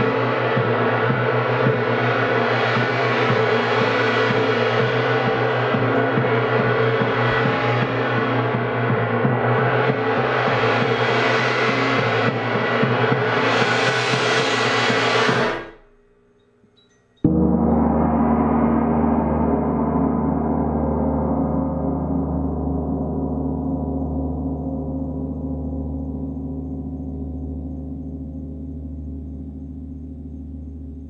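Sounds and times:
gong roll with mallet: 17.2s - 23.8s.

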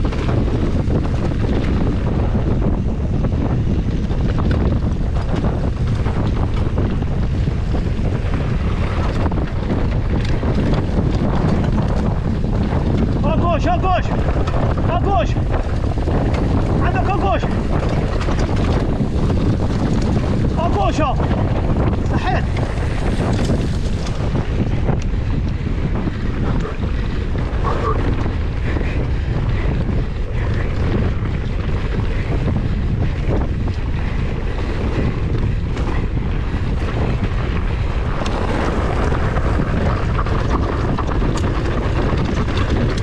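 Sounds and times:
bike rattling on dirt trail: 0.0s - 43.0s
wind buffeting microphone: 0.0s - 43.0s.

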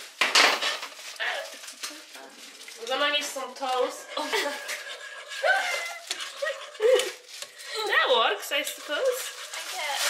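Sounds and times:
metal spatula scraping frying pan: 2.9s - 7.3s, 7.9s - 10.0s.

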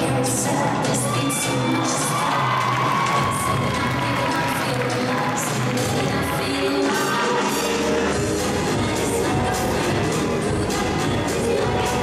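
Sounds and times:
dance program music: 0.0s - 12.0s
crowd cheering and shouting: 0.1s - 8.2s.

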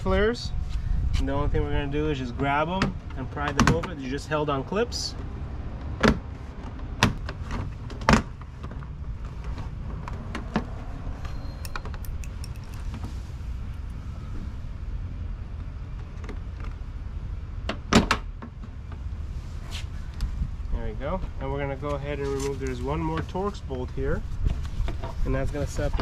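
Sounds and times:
low rumble: 8.9s - 15.4s.

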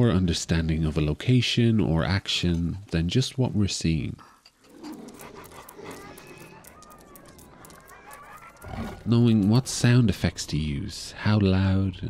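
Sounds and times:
male narrator voice: 0.0s - 4.2s, 9.0s - 12.0s
animal panting: 4.2s - 10.7s.

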